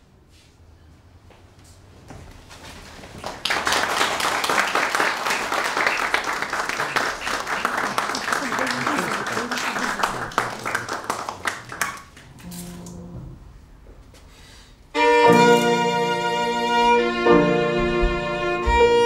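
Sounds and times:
audience applauding: 3.0 - 12.4.

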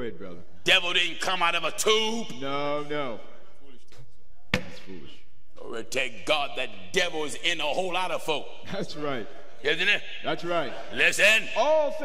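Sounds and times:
man's voice: 0.0 - 3.9, 5.6 - 12.0.

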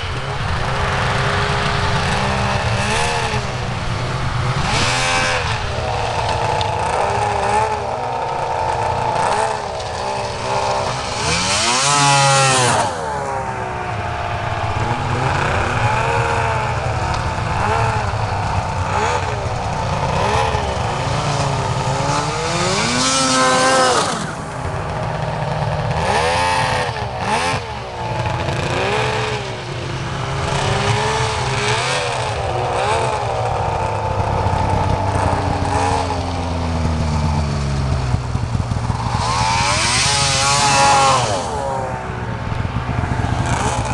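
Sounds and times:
snowmobile engine revving: 0.0 - 43.9.

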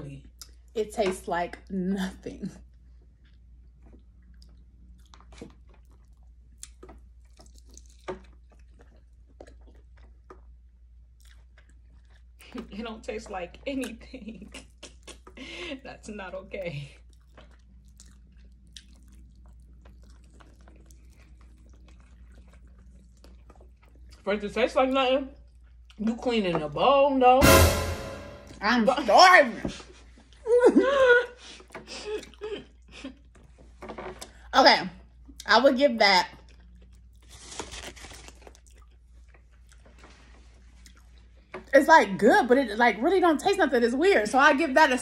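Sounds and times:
person chewing: 3.9 - 12.4, 17.1 - 24.2, 31.6 - 32.4, 36.4 - 40.0, 40.8 - 41.1
person eating crunchy chicken: 4.2 - 12.4, 17.1 - 24.2, 36.4 - 40.0.

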